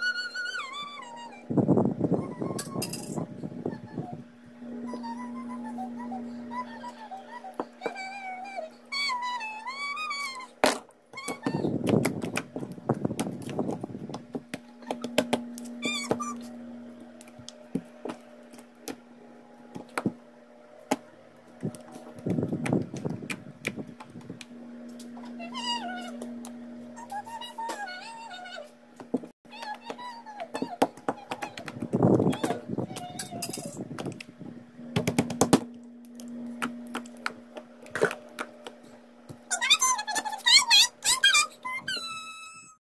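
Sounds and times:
steady low hum: 0.0s - 42.8s
high wavering squeak: 15.8s - 16.6s.

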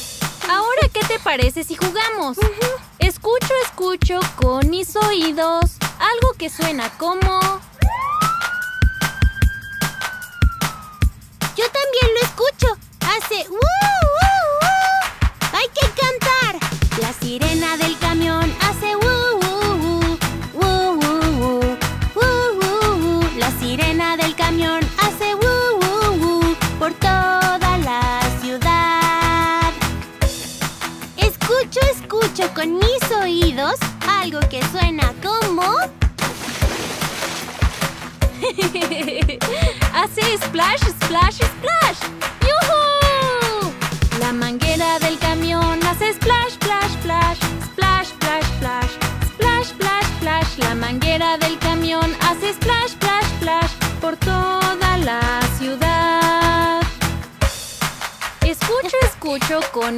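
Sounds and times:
background music with steady beat: 0.0s - 59.9s
cartoon fire truck siren wail: 7.8s - 11.1s.

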